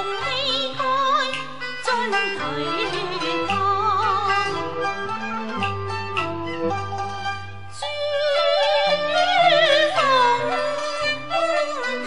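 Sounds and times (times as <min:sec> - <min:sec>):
opera singing with wide vibrato: 0:00.0 - 0:04.8, 0:07.8 - 0:12.0
traditional instrumental accompaniment: 0:00.0 - 0:12.0.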